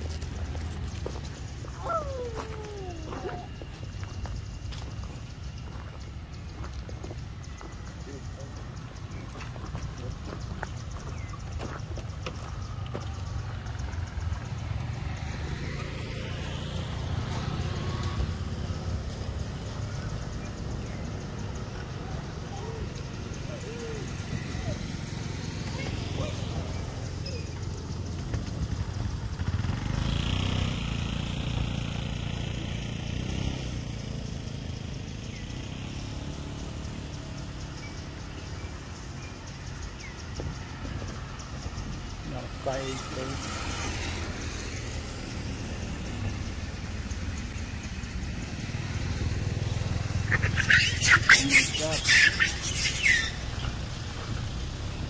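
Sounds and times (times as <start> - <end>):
traffic going by: 0.0 - 55.0.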